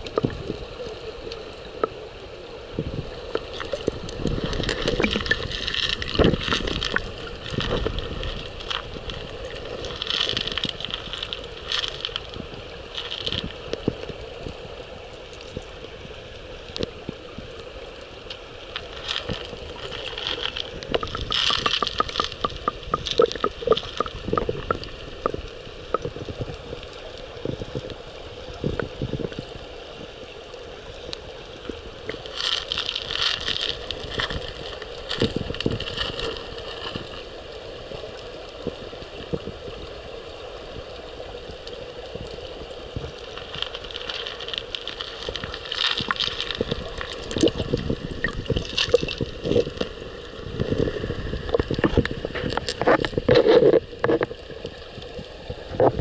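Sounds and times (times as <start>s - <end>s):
muffled underwater river rush: 0.0s - 56.0s
underwater clicks and knocks: 3.3s - 12.4s, 18.8s - 26.6s, 32.1s - 37.1s, 43.0s - 49.9s, 50.6s - 54.7s.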